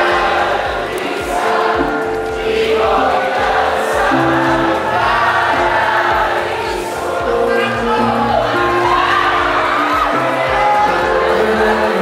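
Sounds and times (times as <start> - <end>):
crowd singing along: 0.0 - 12.0
live pop band: 0.0 - 12.0
steady drum beat: 0.0 - 12.0.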